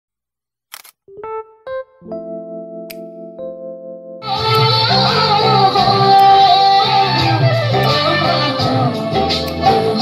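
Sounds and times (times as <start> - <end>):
camera shutter click: 0.7 - 1.0
rising keyboard notes: 1.1 - 10.0.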